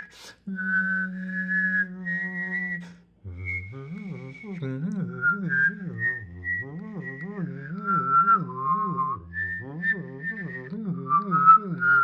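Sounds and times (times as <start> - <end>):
person whistling a melody: 0.0 - 12.0
person voicing a low bass line: 1.9 - 12.0.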